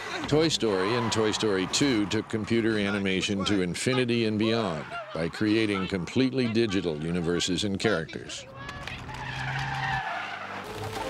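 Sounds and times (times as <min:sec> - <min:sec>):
truck tyres screeching: 0:00.0 - 0:07.7, 0:08.5 - 0:11.0.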